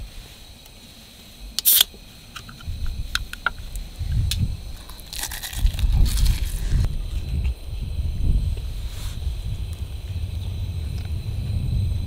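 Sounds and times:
carbonation hissing: 0:00.4 - 0:02.0.

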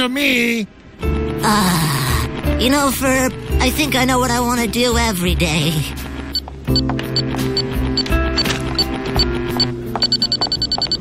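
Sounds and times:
background music: 0:00.6 - 0:11.0.

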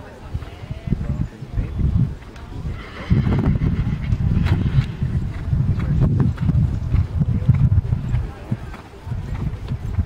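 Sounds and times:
horse hoofbeats on grass: 0:00.3 - 0:10.0.

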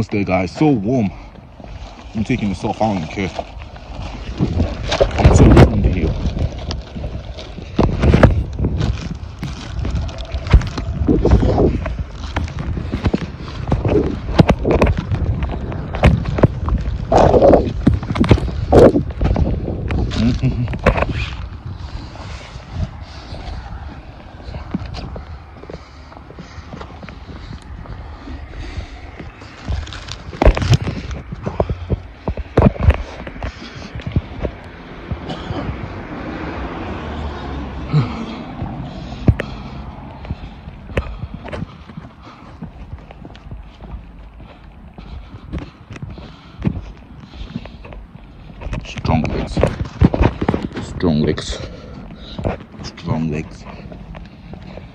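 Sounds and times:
wind buffeting phone microphone: 0:00.0 - 0:54.9.

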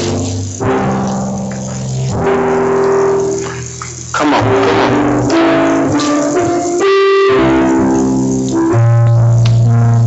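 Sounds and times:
keyboard playing held chords: 0:00.0 - 0:10.0.

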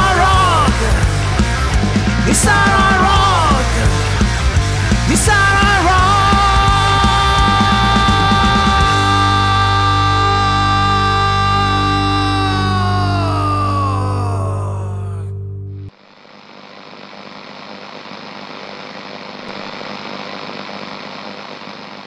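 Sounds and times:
electric guitar and bass chord: 0:00.0 - 0:15.9.

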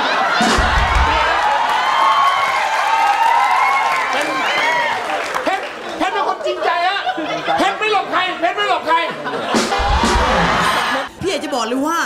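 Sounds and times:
audience laughing and applauding: 0:00.0 - 0:08.0, 0:08.9 - 0:11.1
low thump: 0:00.4 - 0:01.3.

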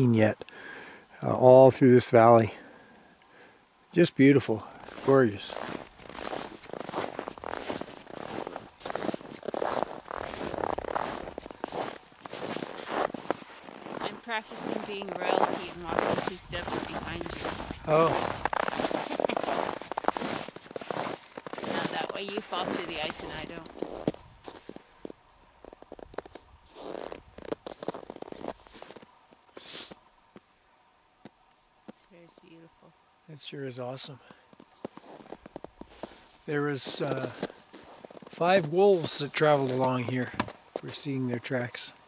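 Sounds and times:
footsteps crunching through snow: 0:04.6 - 0:30.4, 0:34.4 - 0:41.1
clothing rustling: 0:05.5 - 0:14.2.

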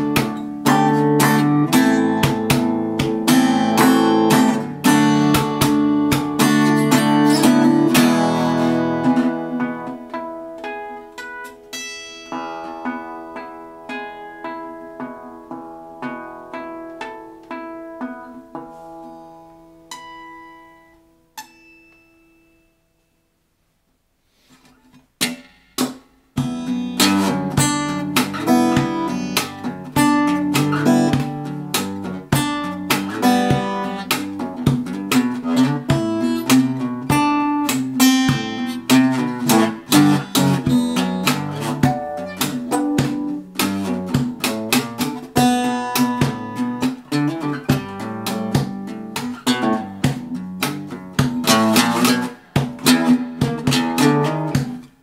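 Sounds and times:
percussive fingerstyle acoustic guitar: 0:00.0 - 0:21.6, 0:24.4 - 0:55.0.

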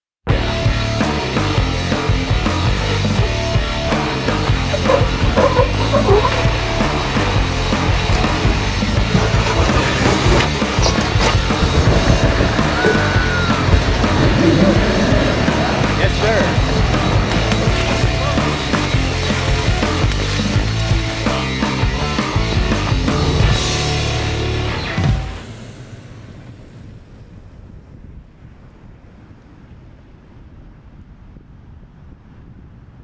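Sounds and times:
loud rock music: 0:00.3 - 0:25.6
voices: 0:02.5 - 0:22.5.

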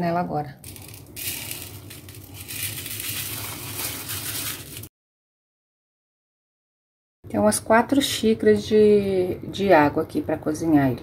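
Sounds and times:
rice grains pouring into water: 0:00.7 - 0:04.9.

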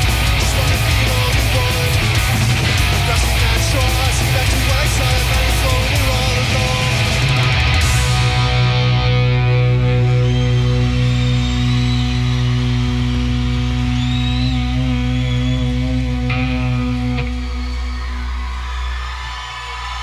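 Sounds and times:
electric guitar and bass chord: 0:00.0 - 0:18.0.

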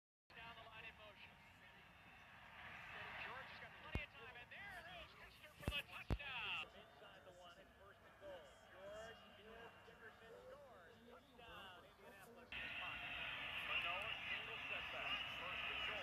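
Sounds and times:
crowd noise: 0:00.4 - 0:16.0.

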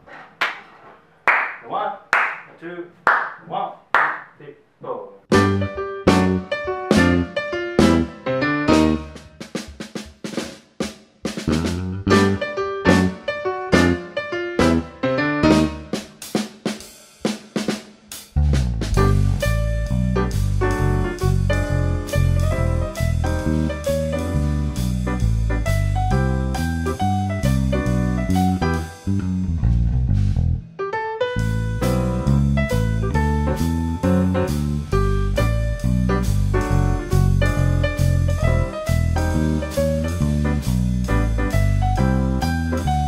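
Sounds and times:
hand claps: 0:00.2 - 0:03.4, 0:04.0 - 0:04.4
electric bass: 0:05.3 - 0:09.2, 0:11.4 - 0:15.8, 0:18.4 - 0:43.0
grand piano: 0:05.3 - 0:09.5, 0:11.5 - 0:16.0, 0:18.8 - 0:29.8, 0:30.6 - 0:43.0
drum kit hits: 0:05.3 - 0:14.8, 0:15.4 - 0:29.2, 0:34.4 - 0:43.0.

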